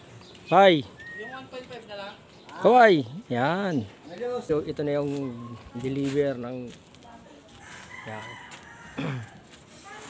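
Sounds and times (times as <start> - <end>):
rooster crowing: 7.6 - 9.4.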